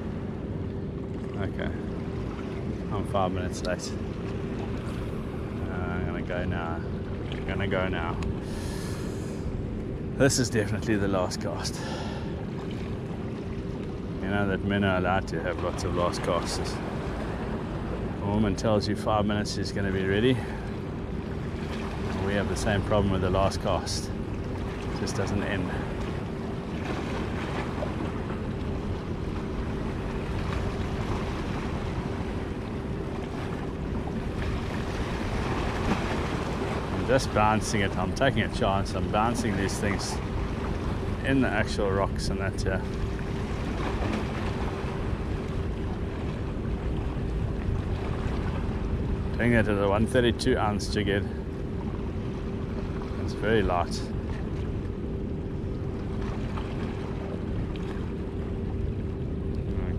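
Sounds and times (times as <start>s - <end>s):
faint steady hum: 0.0s - 59.9s
harbour water: 0.0s - 59.9s
wind: 0.0s - 59.9s.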